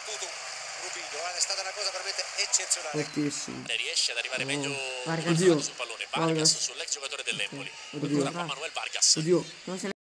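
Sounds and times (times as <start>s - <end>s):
stadium crowd noise: 0.0s - 3.0s
man speaking: 1.4s - 9.6s.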